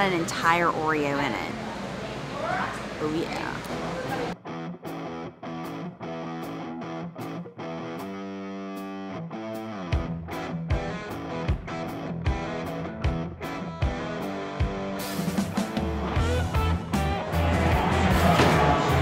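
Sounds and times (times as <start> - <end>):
guitar chords: 4.4 - 19.0.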